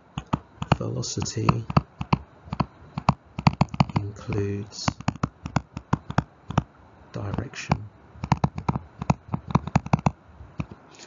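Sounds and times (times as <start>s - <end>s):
stylus tapping on tablet screen: 0.0s - 10.8s.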